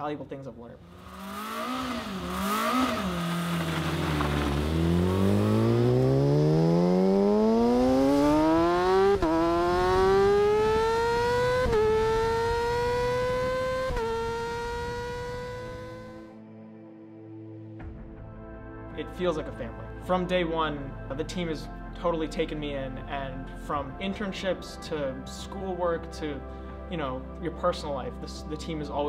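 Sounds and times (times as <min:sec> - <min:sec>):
race car engine revving: 0:00.8 - 0:16.3.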